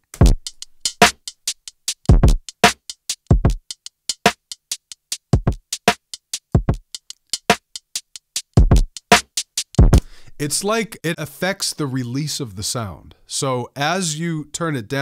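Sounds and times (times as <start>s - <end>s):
clipped drum loop hits: 0.2s - 3.7s, 8.6s - 10.8s.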